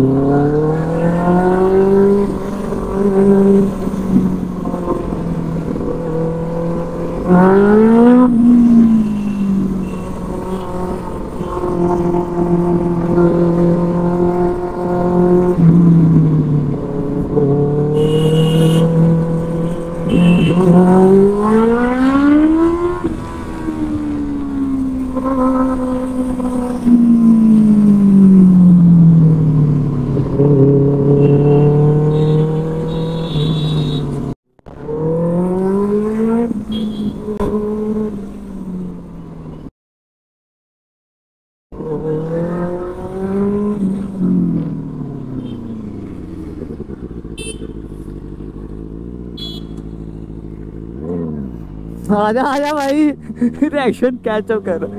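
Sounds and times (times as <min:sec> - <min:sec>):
motorcycle engine with loud exhaust: 0:00.0 - 0:39.6, 0:41.8 - 0:54.9.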